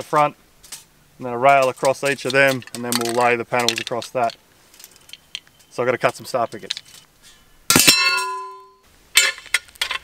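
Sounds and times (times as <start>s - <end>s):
steel pickets clanging: 1.5s - 10.0s.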